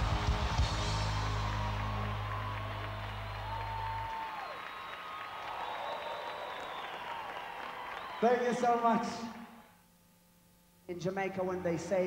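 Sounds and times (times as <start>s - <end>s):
audience applauding and cheering: 0.0s - 9.7s.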